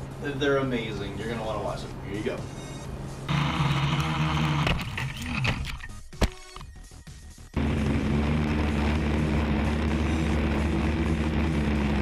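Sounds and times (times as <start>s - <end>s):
quadcopter propellers buzzing: 3.3s - 5.1s, 7.6s - 12.0s.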